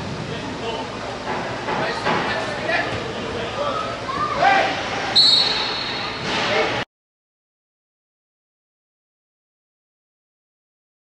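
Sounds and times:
players shouting: 0:02.8 - 0:06.1
referee's whistle: 0:05.1 - 0:06.2.

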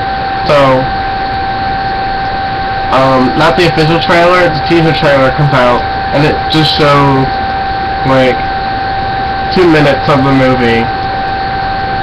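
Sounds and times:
constant high whine: 0:00.0 - 0:12.0.

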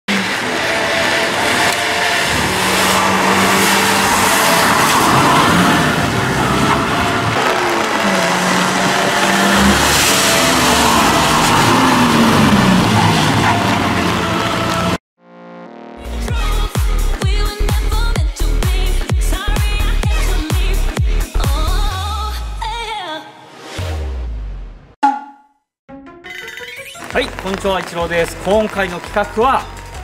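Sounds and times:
car engines revving: 0:00.1 - 0:15.0
tyres hissing on wet road: 0:00.1 - 0:15.0, 0:27.0 - 0:29.9
brief electronic tone: 0:25.0 - 0:25.6.

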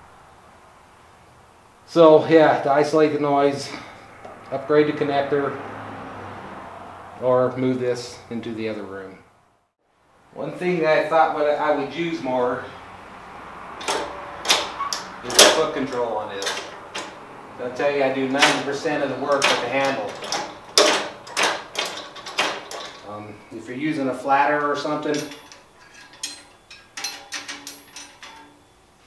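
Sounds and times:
steel tools clanking: 0:13.7 - 0:29.0.

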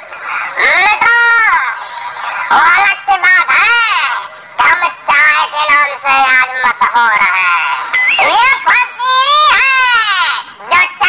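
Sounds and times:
high-pitched wailing voice: 0:08.0 - 0:09.7.

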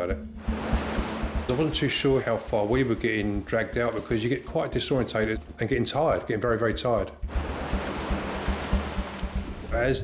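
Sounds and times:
low background music: 0:00.0 - 0:10.0
sea water rushing: 0:00.4 - 0:05.3, 0:07.3 - 0:09.8.

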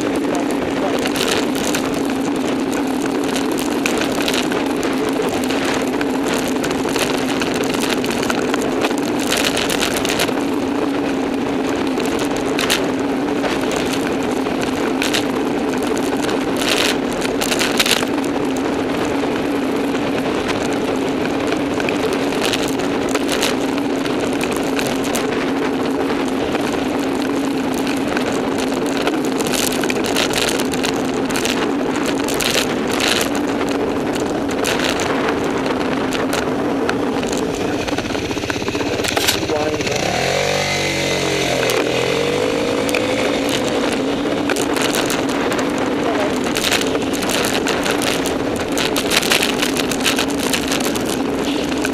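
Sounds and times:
clicks and knocks from road: 0:00.0 - 0:51.9
constant low hum: 0:00.0 - 0:51.9
wind and road rumble: 0:00.0 - 0:51.9
motor vehicle passing: 0:36.6 - 0:51.9.

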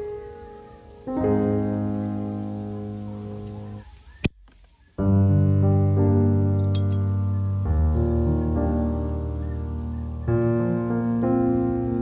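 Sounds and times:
slow piano chords: 0:00.0 - 0:04.2, 0:04.9 - 0:12.0.

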